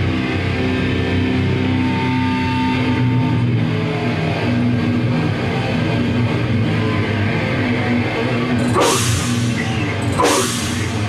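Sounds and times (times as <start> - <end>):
distorted electric guitars: 0.0 - 11.0
higher held tone: 8.7 - 11.0.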